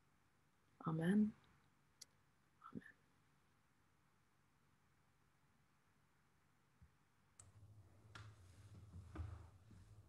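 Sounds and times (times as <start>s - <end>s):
soft low thump: 8.1s - 9.9s.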